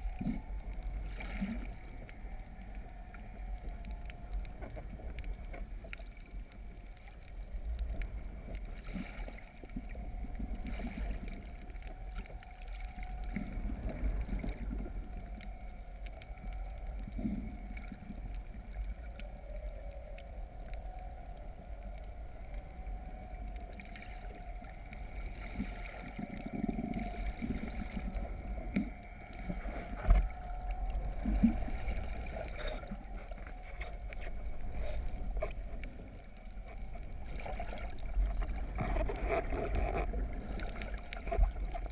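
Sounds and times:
boat motor hum underwater: 0.0 - 41.9
water gurgles: 0.0 - 41.9
water rushing underwater: 0.0 - 41.9.

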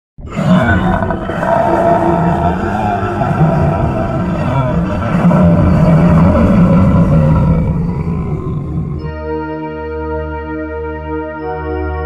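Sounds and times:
monster growl: 0.2 - 9.2.

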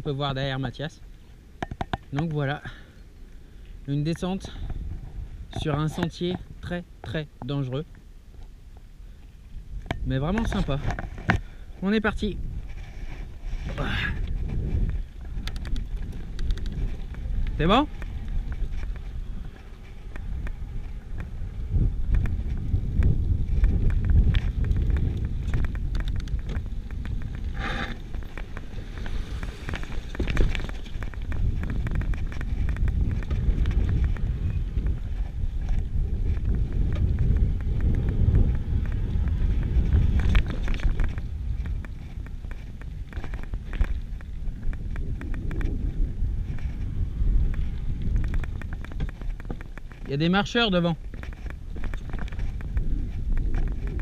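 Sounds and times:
wind rumbling on microphone: 0.0 - 54.0
mountain bike rattling on stony trail: 9.8 - 54.0.

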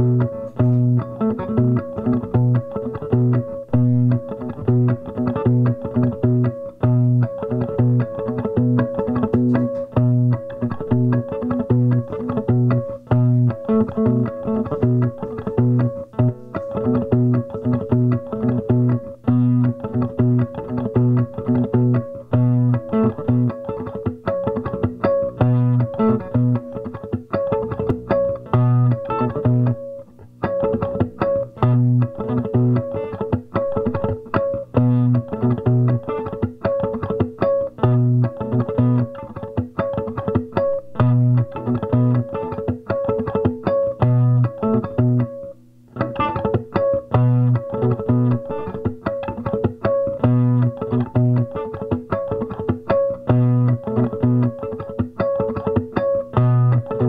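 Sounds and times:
electric guitar riff: 0.0 - 57.0.

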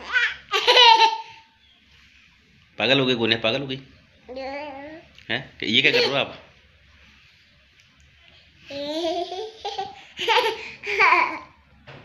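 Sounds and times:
girl laughing: 10.2 - 11.5.

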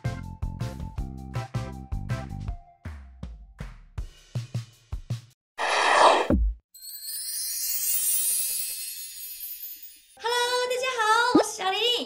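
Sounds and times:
rising sparkly shimmer: 5.6 - 10.2.

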